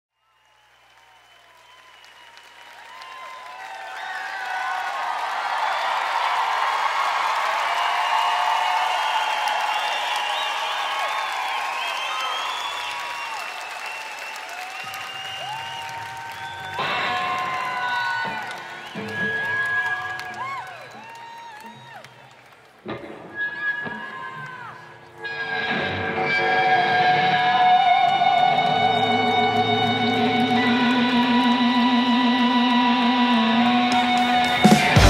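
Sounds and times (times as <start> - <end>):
audience applauding and cheering: 0.2 - 35.0.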